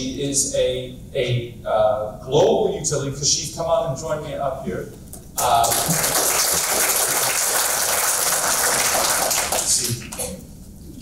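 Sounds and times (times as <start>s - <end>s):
audience applauding: 5.4s - 10.4s.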